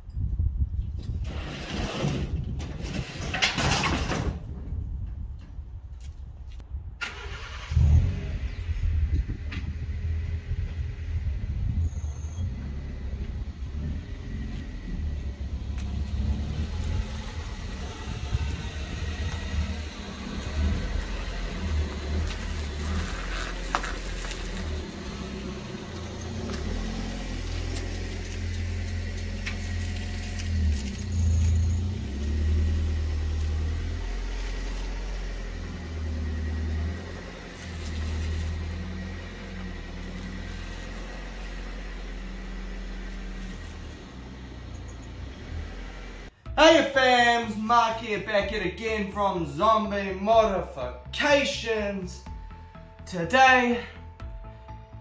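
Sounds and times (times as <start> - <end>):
car engine rumble: 0.0 - 55.0.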